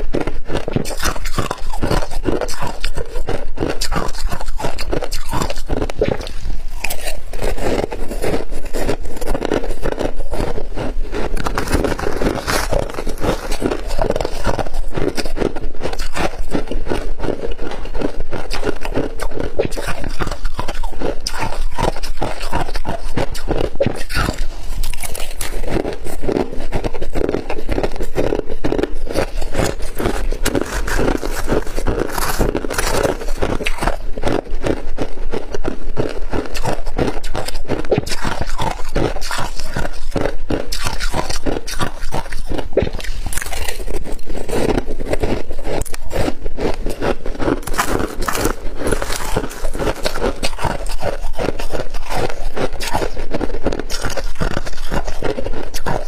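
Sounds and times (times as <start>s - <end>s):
crunching and chewing ice: 0.0s - 56.0s
metal spoon scraping ice: 0.6s - 34.4s, 36.4s - 56.0s.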